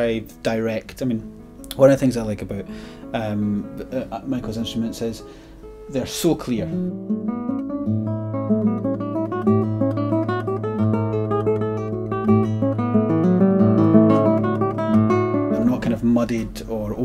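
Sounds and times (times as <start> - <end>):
fingerstyle classical guitar: 0.0 - 17.0.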